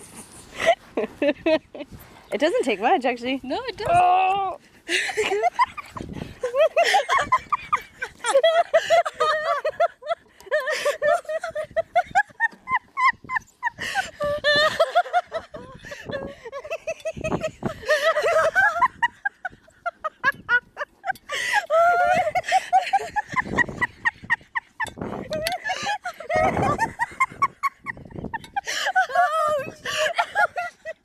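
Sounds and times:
high-pitched squealing laughter: 5.3s - 31.0s.

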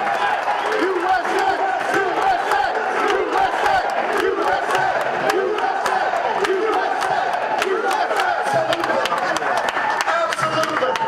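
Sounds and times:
crowd cheering and shouting: 0.0s - 11.0s
sharp claps: 0.0s - 11.0s.

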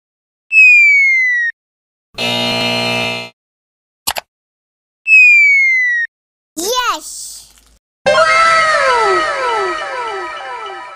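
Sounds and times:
descending cartoon whistle: 5.1s - 6.1s, 8.1s - 10.9s.

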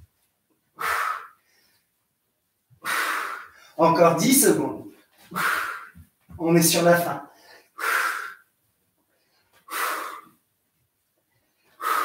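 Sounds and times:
man breathing out forcefully: 0.8s - 1.7s, 2.8s - 3.8s, 5.3s - 6.0s, 7.4s - 8.4s, 9.6s - 10.4s, 11.8s - 12.0s.

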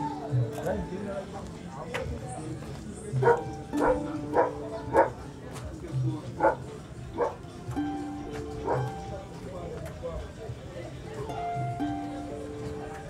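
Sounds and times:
background music of held notes: 0.0s - 13.0s
dog barking: 3.2s - 5.2s, 6.4s - 7.4s.

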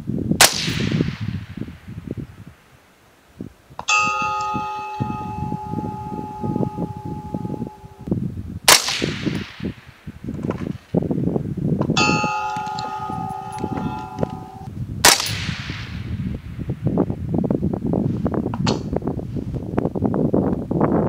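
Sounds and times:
wind rumbling on microphone: 0.0s - 21.0s
suppressed rifle shot: 0.4s - 1.5s, 8.7s - 9.7s, 15.0s - 16.1s
steel target ringing: 3.9s - 8.1s, 12.0s - 14.7s.

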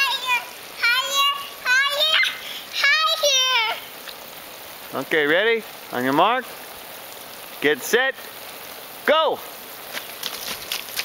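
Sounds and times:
girl calling out: 0.0s - 3.9s
hose water spraying: 0.0s - 11.0s.

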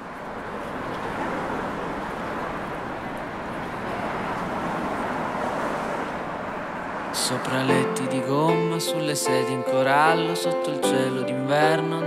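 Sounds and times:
passers-by: 0.0s - 12.0s
traffic: 0.0s - 12.0s.

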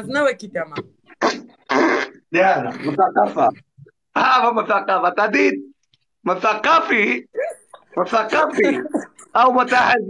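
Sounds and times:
rough fart sounds: 1.1s - 2.9s.

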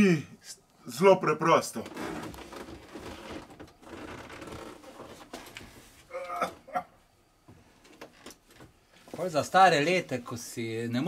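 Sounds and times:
shuffling and scraping: 1.8s - 6.1s, 7.6s - 10.6s.

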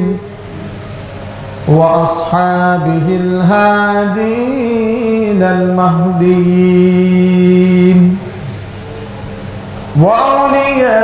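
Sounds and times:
steady background noise: 0.0s - 11.0s
man chanting: 1.6s - 8.3s, 9.9s - 11.0s.

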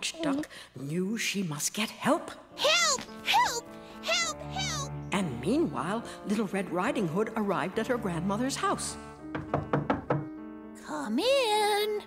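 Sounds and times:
soft background music: 0.0s - 12.0s
knocking on wooden door: 9.2s - 10.4s.

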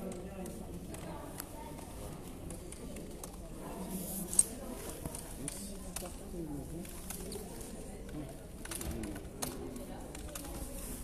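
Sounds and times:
faint voices murmuring: 0.0s - 11.0s.

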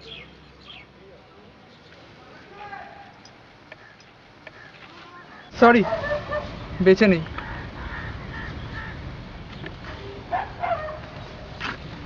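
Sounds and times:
outdoor background noise: 0.0s - 12.0s
distant animal calls: 3.6s - 9.1s.

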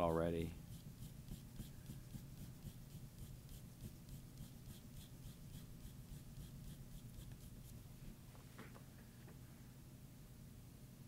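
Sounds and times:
pencil shading strokes: 0.5s - 7.8s.

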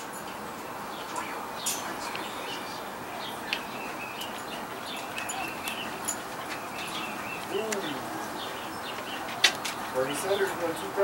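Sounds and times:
birds chirping: 0.0s - 11.0s
steady background hiss: 0.0s - 11.0s.

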